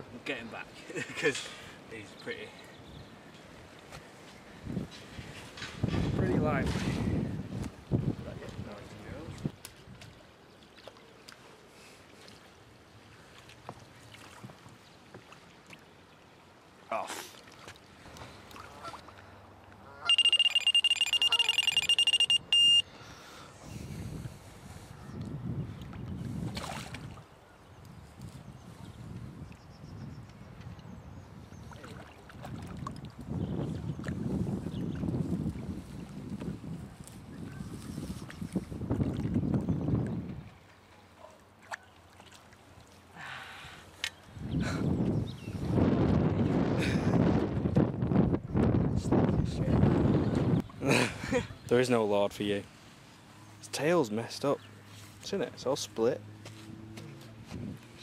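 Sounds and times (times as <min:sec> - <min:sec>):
wind rumbling on microphone: 0:04.5 - 0:10.2, 0:23.6 - 0:40.6, 0:44.3 - 0:51.7, 0:57.1 - 0:58.0
high-pitched electronic bite alarm: 0:20.1 - 0:22.8.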